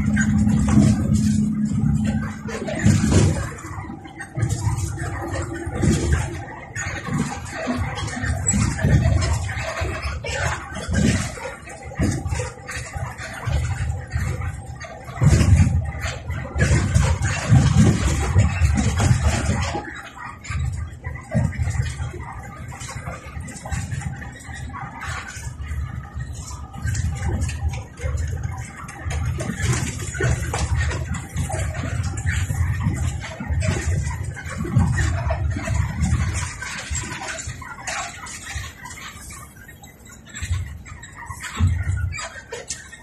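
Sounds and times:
low knocks and rattles: 0:00.0 - 0:43.0.

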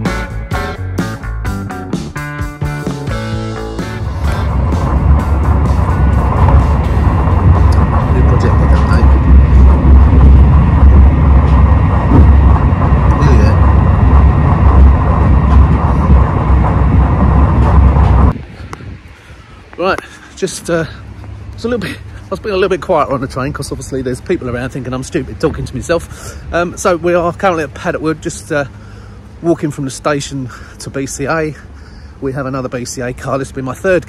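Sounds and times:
music: 0:00.0 - 0:09.7
train low rumble: 0:00.0 - 0:34.0.

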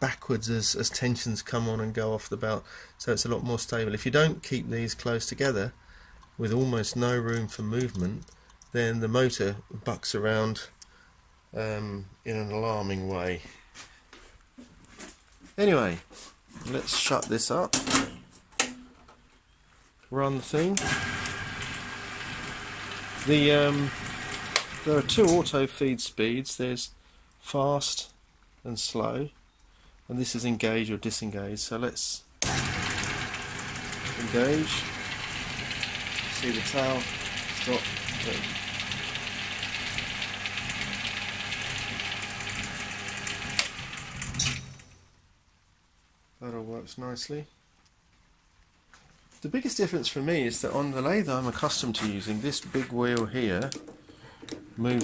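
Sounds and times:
lathe whirring and rattling: 0:20.8 - 0:25.2, 0:32.4 - 0:44.8.

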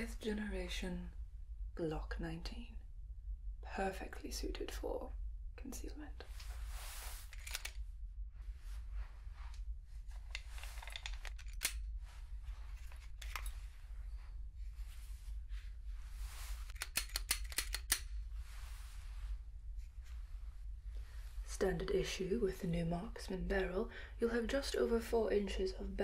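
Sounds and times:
sharp metallic clicks: 0:16.7 - 0:18.1.

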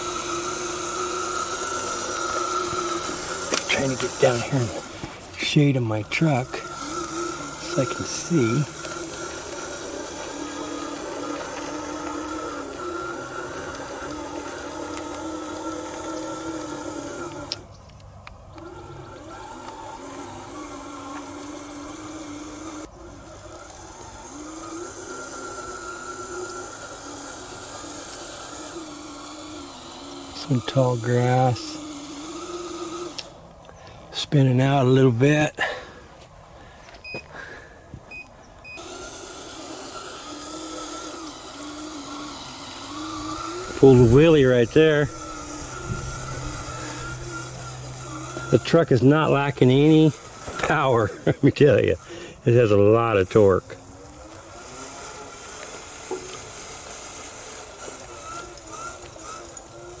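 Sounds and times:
electric drivetrain whining: 0:00.0 - 1:00.0.

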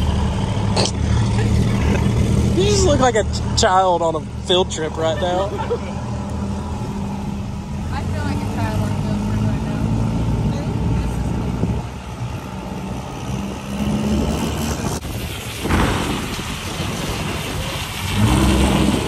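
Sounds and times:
diesel truck engine: 0:00.0 - 0:19.0.

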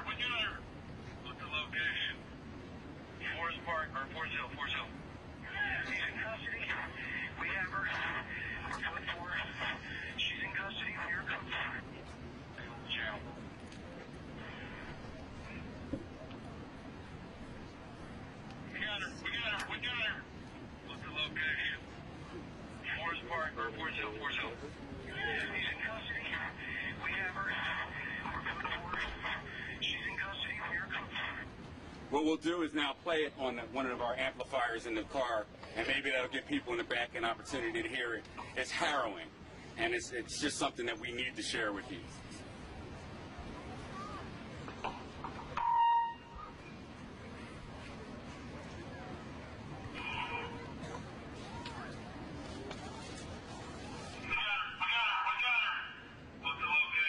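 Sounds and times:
tinny police radio voices: 0:00.0 - 0:02.3, 0:03.0 - 0:43.9, 0:48.6 - 0:52.0, 0:53.2 - 0:57.0
radio background hiss: 0:00.0 - 0:43.9, 0:47.3 - 0:57.0
low crowd murmur: 0:00.0 - 0:57.0.

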